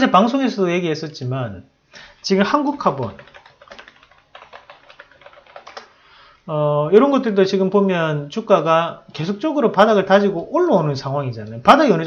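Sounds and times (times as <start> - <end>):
keyboard typing clicks: 2.7 - 5.9.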